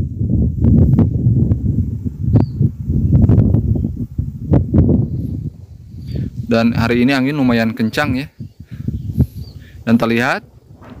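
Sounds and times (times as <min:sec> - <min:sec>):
wind buffeting microphone: 0:00.0 - 0:11.0
sharp crackles: 0:09.6 - 0:11.0.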